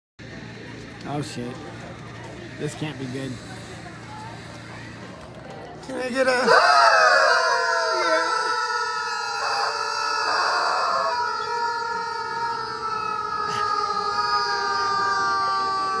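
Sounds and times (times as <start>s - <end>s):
rubber chickens squealing: 6.4s - 16.0s.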